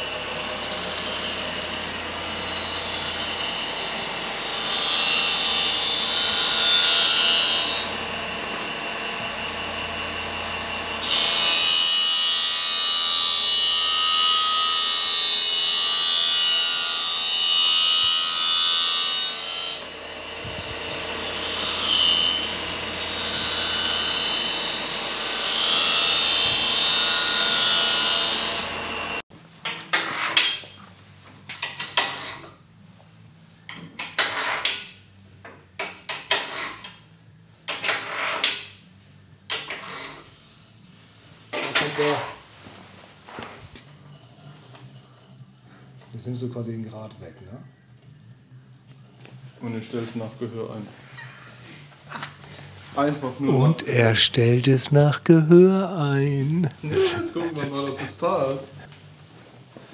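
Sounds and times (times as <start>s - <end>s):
grinding wheel on steel blades: 0.0s - 8.0s
clicks and knocks from hand work: 29.6s - 30.8s, 31.5s - 32.5s, 33.7s - 37.0s, 37.7s - 38.8s, 39.5s - 40.0s.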